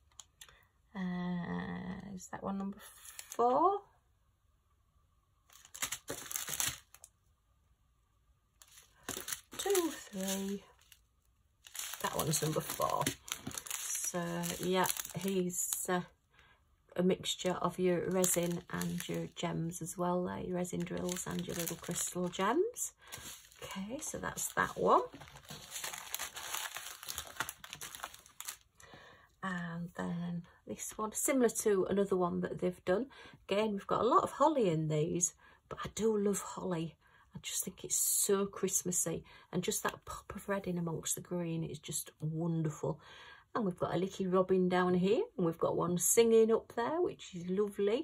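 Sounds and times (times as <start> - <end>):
plastic packets crinkling: 5.5 - 7.1, 8.6 - 15.9, 17.4 - 28.7.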